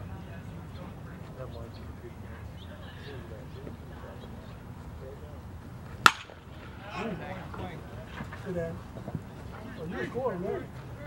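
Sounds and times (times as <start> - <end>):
baseball bat cracking on ball: 6.0 - 6.5.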